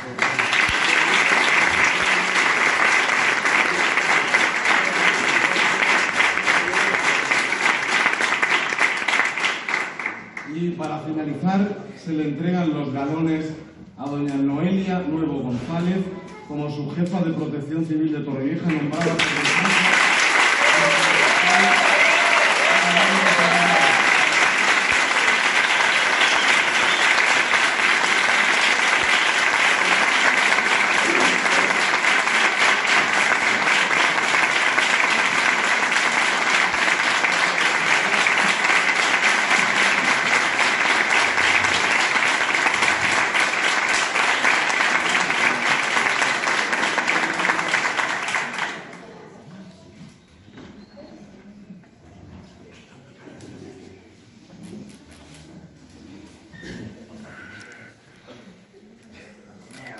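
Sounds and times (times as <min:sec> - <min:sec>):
audience applauding: 0:00.0 - 0:10.6, 0:18.6 - 0:49.4.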